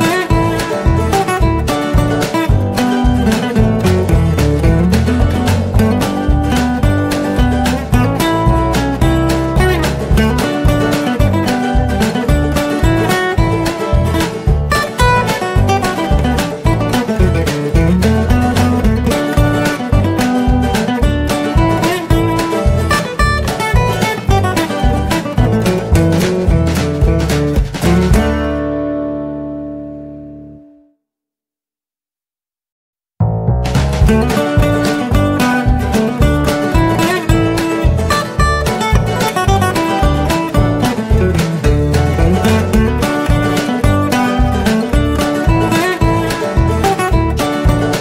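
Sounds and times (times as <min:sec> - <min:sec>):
bass line: 0:00.0 - 0:30.9, 0:33.2 - 0:48.0
plucked guitar notes: 0:00.0 - 0:31.0, 0:33.2 - 0:48.0.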